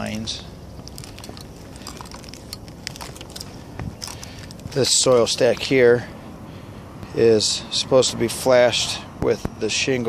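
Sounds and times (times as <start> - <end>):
low background rumble: 0.0 - 7.7.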